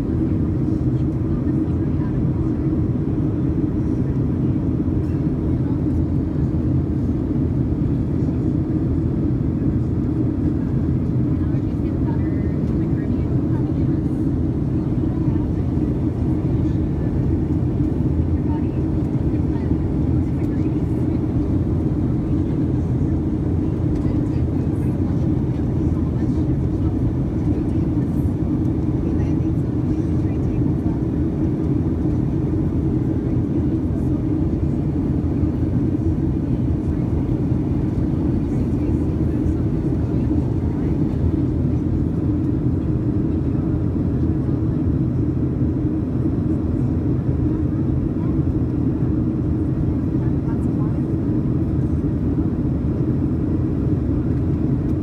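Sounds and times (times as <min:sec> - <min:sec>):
airplane cabin engine rumble: 0:00.0 - 0:55.0.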